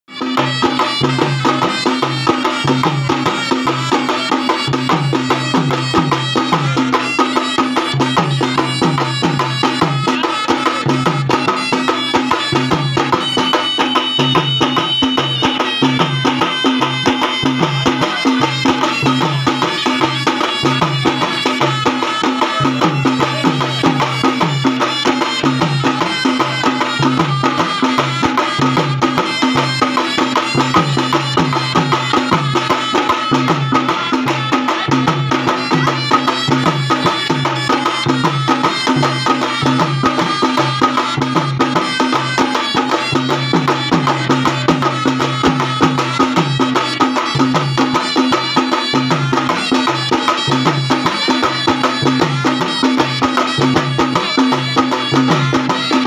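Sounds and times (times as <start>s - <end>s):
shawm melody: 0.1s - 56.0s
barrel drums beating: 0.2s - 56.0s.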